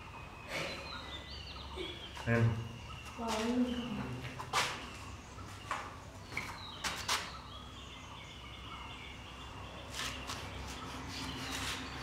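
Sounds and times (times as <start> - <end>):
birds calling: 0.0 - 12.0.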